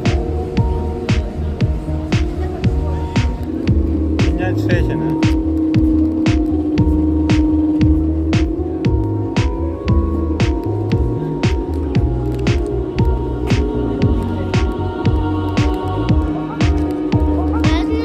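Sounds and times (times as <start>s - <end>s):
electronic music with steady beat: 0.0s - 18.0s.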